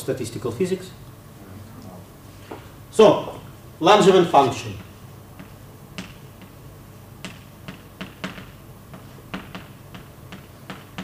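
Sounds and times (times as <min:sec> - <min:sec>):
chalk tapping on blackboard: 0:07.2 - 0:11.0.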